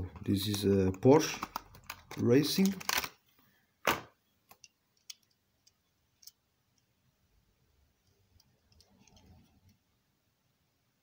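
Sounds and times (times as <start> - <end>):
plastic packaging handling: 0.0 - 3.2.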